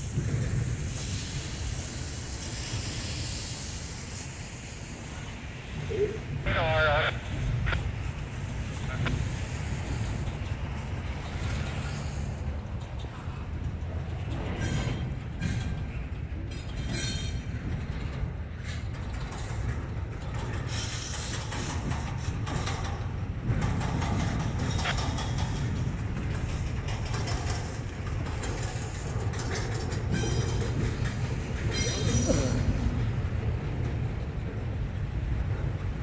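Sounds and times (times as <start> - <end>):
steel wheels rumbling on rail: 0.0 - 36.0
wheel clacks: 9.8 - 36.0.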